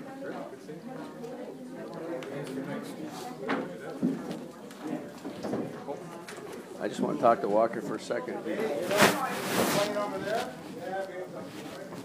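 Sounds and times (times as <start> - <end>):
people talking quietly: 0.0 - 12.0.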